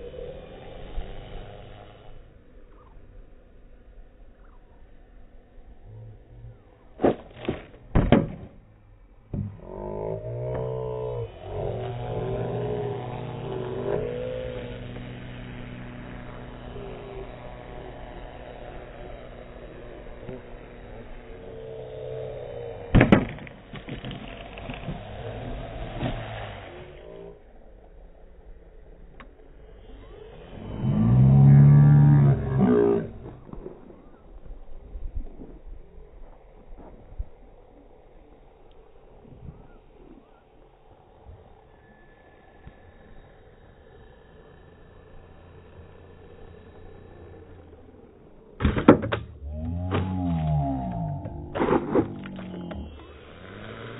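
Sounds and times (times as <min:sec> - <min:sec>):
model plane motor droning: 0:00.0 - 0:53.9
sharp knocks: 0:23.0 - 0:24.1.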